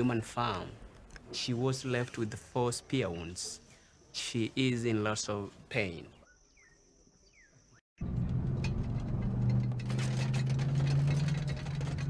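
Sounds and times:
road noise: 8.0 - 12.0
vehicle engine running: 8.0 - 12.0.

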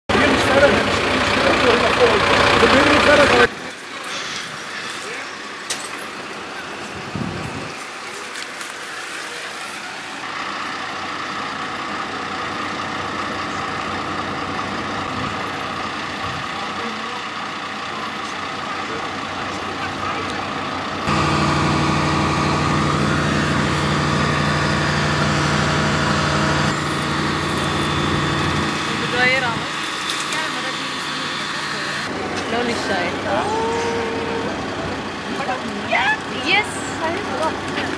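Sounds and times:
fire truck engine running: 0.1 - 37.9.

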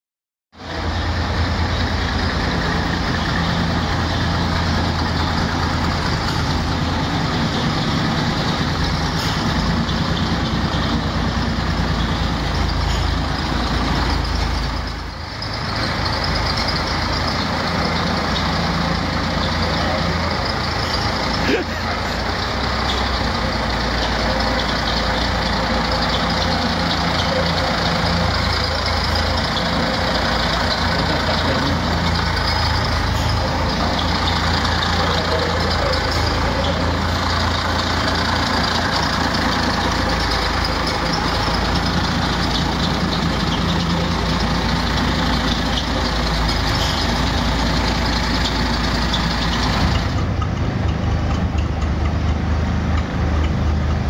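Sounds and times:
bus diesel engine running: 0.6 - 54.0.

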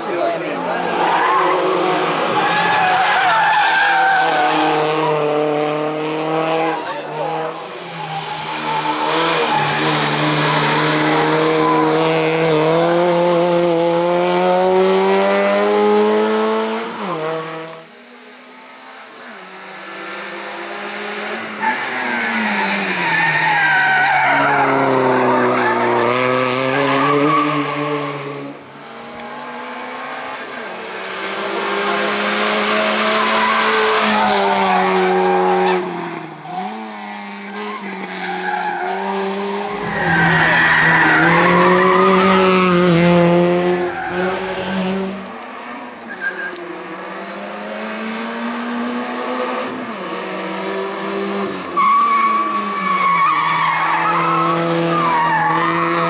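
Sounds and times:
race car engine revving through gears: 0.6 - 56.0.

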